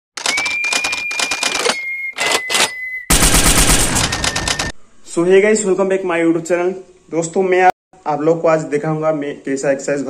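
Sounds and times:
rapid clicking: 0.2 - 1.8, 3.1 - 4.8
steady high tone: 1.2 - 5.5.

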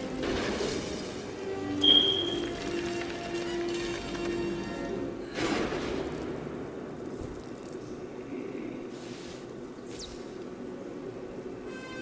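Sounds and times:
quiet film soundtrack rumble: 0.0 - 12.0.

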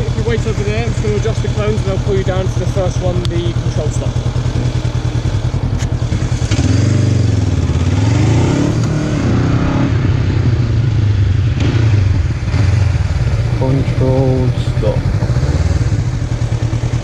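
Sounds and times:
motorcycle engine idling and revving: 0.0 - 17.0.

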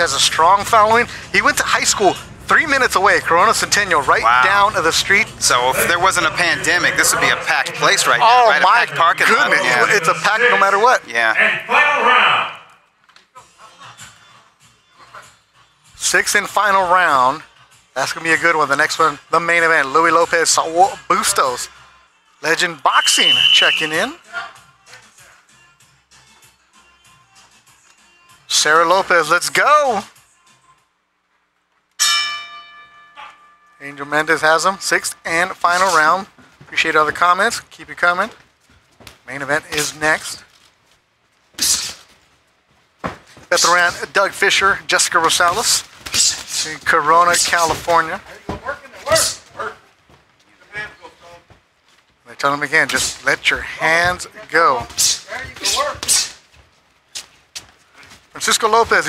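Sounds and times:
boxing ring bell ringing: 32.0 - 35.3.

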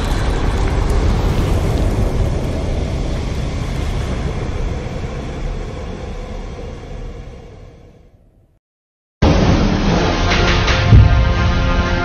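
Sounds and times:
low rumbling sound effect: 0.0 - 8.6.

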